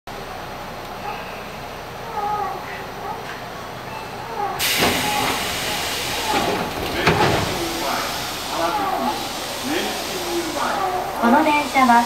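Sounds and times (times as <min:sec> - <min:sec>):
faint voices: 0:01.0 - 0:12.0
train doors hissing open: 0:04.0 - 0:12.0.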